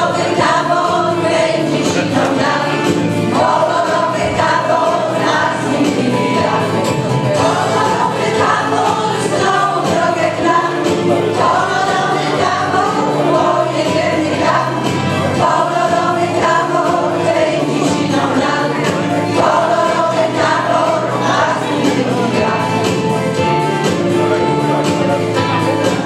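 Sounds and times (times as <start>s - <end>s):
women singing in chorus: 0.0s - 22.9s.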